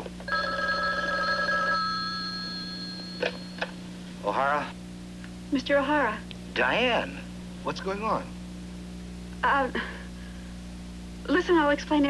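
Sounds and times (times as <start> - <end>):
telephone ringing: 0.3 - 3.7.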